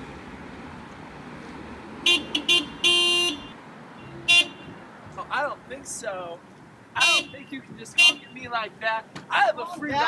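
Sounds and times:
car horn honking: 2.0 - 4.9, 7.0 - 8.5.

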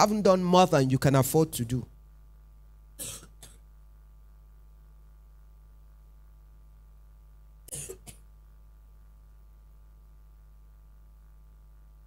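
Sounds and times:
woman coughing into microphone: 2.9 - 3.7, 7.7 - 8.4.

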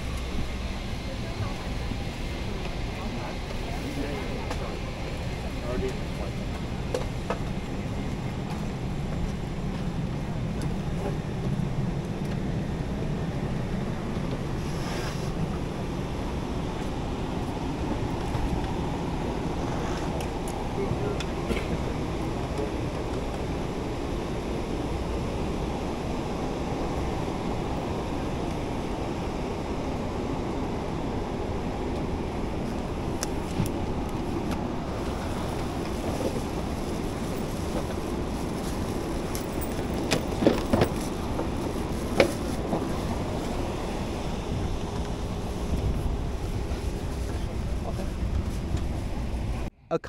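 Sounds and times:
rushing cabin air-conditioning: 0.0 - 49.7.

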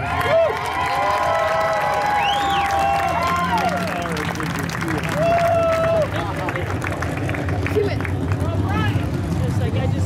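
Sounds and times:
crowd cheering: 0.0 - 9.2.

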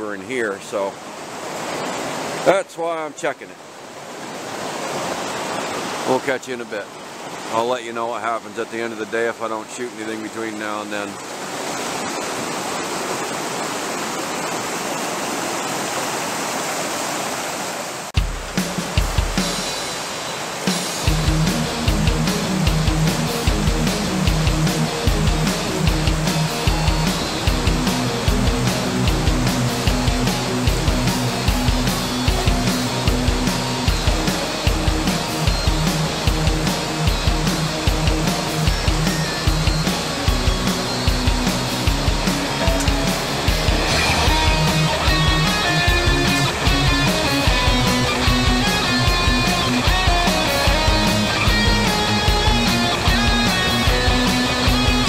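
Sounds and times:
shallow river rushing: 0.0 - 55.0
music with steady beat: 20.8 - 55.0.

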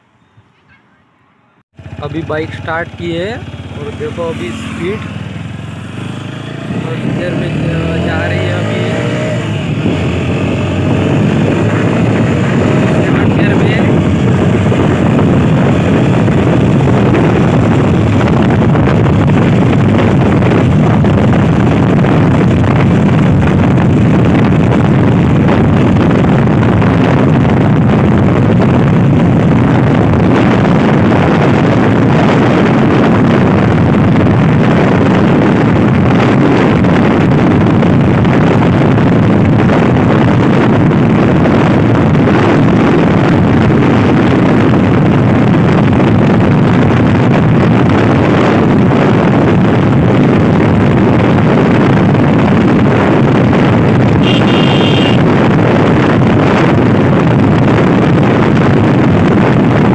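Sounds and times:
wind on microphone: 0.0 - 59.9
motorcycle engine at speed: 1.7 - 59.9.

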